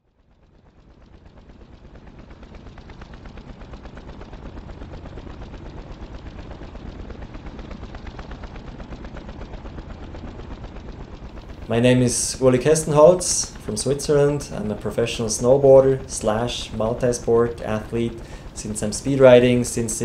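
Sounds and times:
helicopter rotor thudding: 1.0 - 20.0.

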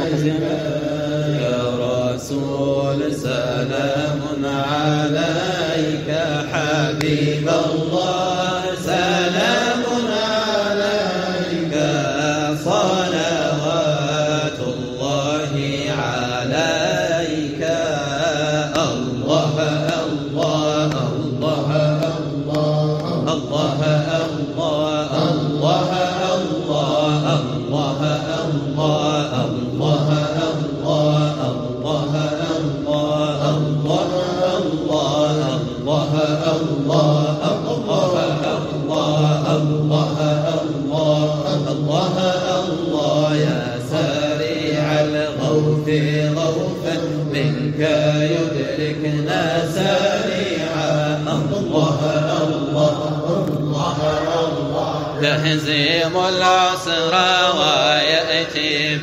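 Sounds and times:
men chanting drone: 0.0 - 59.0
lead voice chanting: 49.3 - 58.8.

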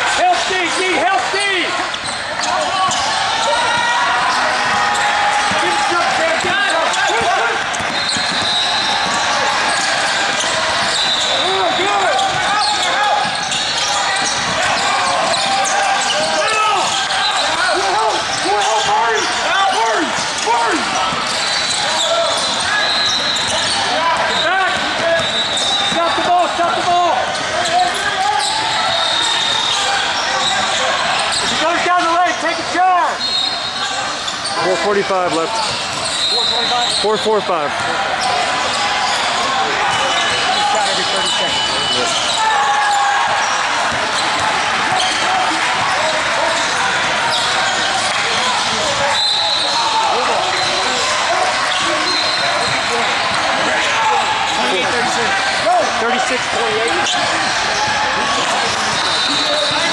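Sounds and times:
many voices talking and calling: 0.0 - 59.9
basketballs bouncing on floor: 1.8 - 31.9, 35.5 - 36.7, 41.9 - 49.0, 51.6 - 53.9.

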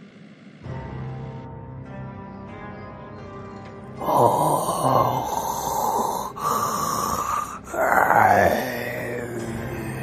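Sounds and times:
raspy zombie groans: 4.0 - 10.0.

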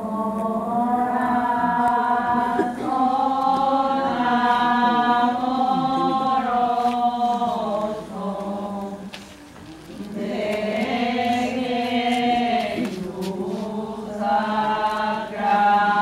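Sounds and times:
group singing a slow hymn: 0.0 - 16.0.

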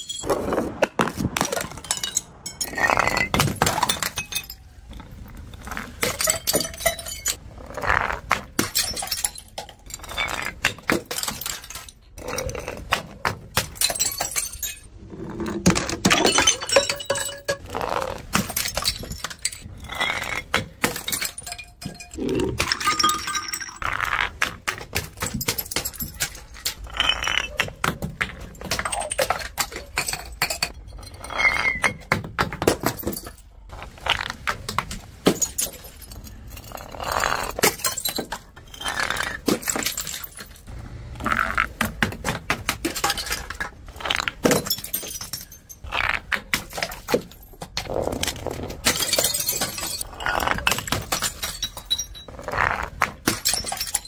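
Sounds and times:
glass jar shattering on stone: 0.0 - 0.3, 1.5 - 4.7, 5.6 - 7.4, 8.5 - 12.8, 13.6 - 14.9, 15.6 - 17.6, 18.3 - 23.9, 28.5 - 33.4, 35.2 - 40.7, 42.8 - 45.9, 48.3 - 52.4, 53.2 - 54.0
glass shards clinking: 0.0 - 0.3, 6.0 - 7.4, 8.6 - 12.5, 16.0 - 17.6, 18.4 - 23.8, 42.9 - 45.9, 48.9 - 52.3, 53.3 - 54.0
bottles tumbling down concrete steps: 0.0 - 54.0.

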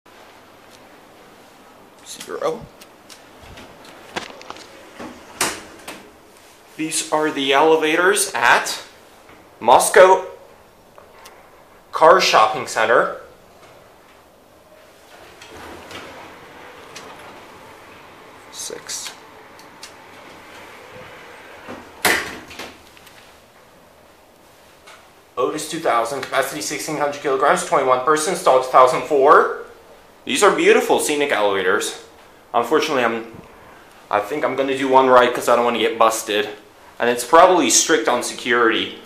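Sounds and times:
elevator doors sliding shut: 3.3 - 6.3, 14.8 - 23.6
door clunk: 15.1 - 22.9.

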